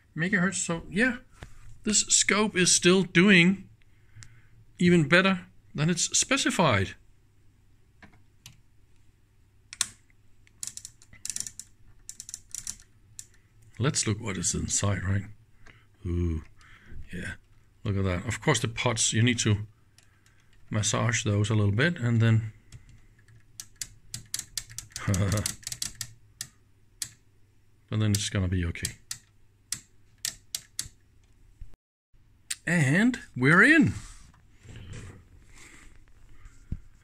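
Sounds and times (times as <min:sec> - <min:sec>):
rotary switch clicks: 0:09.7 - 0:13.4, 0:28.8 - 0:31.0.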